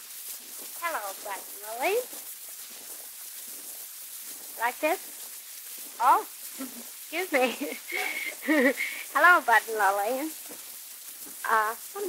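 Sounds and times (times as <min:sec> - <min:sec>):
record surface hiss: 0:00.0 - 0:12.0.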